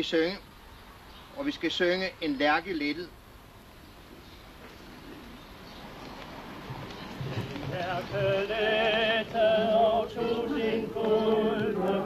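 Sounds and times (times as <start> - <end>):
crowd murmuring and shuffling: 4.5 - 12.0
crowd singing together: 7.6 - 12.0.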